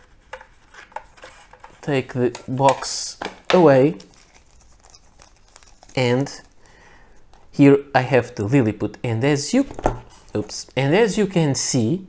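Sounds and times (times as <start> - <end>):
person speaking: 1.8 - 4.2, 5.8 - 6.6, 7.5 - 12.0.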